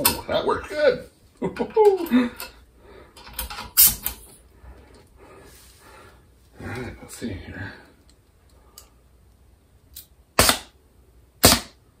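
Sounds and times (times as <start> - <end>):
pneumatic cylinder bangs: 10.4 - 10.7, 11.4 - 11.8.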